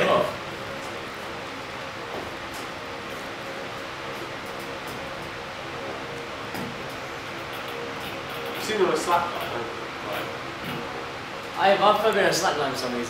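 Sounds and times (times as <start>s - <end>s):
steady tonal hum: 0.0s - 13.0s.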